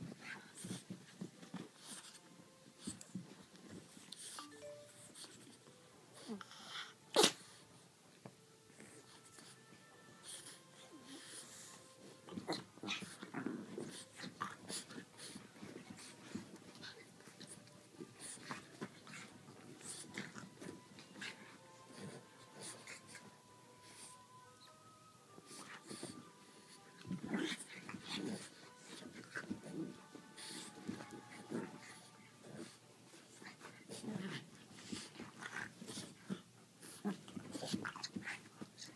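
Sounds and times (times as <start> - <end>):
dogs snorting and wheezing: 6.2 - 7.6, 8.8 - 24.3, 25.4 - 38.9.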